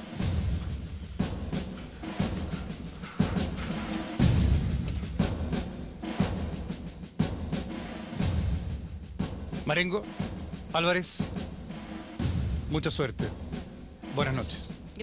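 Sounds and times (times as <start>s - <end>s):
dramatic music with deep drums: 0.0s - 15.0s.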